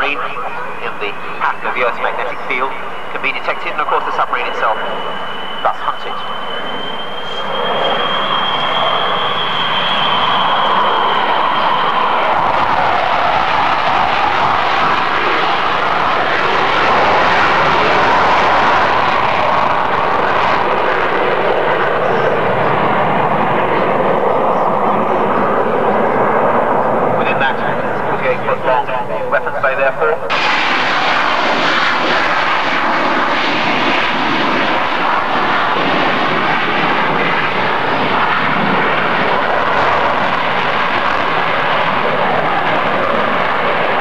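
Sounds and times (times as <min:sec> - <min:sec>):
high thin whine: 0:00.0 - 0:12.8
jet flying past: 0:00.0 - 0:44.0.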